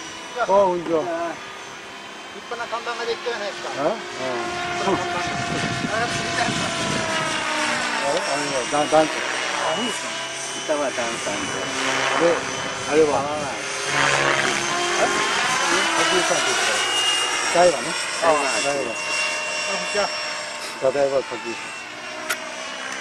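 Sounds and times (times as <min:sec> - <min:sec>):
rc helicopter rotor whine: 0:00.0 - 0:23.0.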